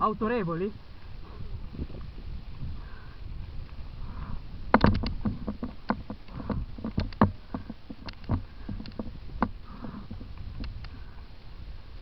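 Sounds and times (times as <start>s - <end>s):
tyres rumbling on trail: 0.0s - 12.0s
wind: 0.0s - 12.0s
bike knocks and rattles: 4.7s - 10.8s.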